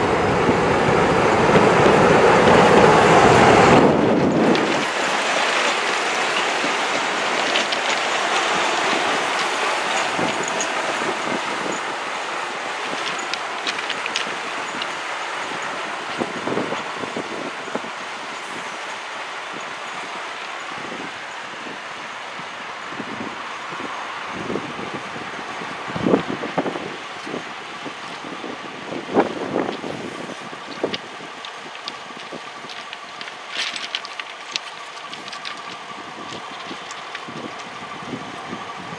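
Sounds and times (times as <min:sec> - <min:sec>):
diesel locomotive engines running: 0:00.0 - 0:38.9
wheels clanking on track: 0:00.0 - 0:38.9.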